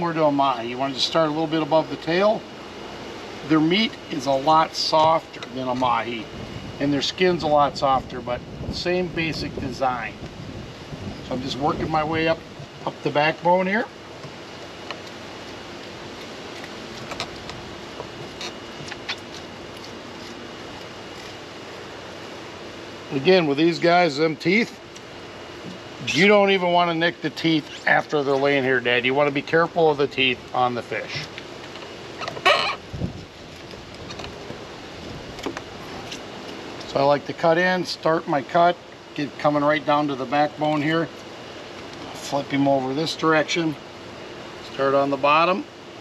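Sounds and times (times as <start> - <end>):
outdoor background hiss: 0.0 - 46.0
loud bird-like call: 32.2 - 32.9.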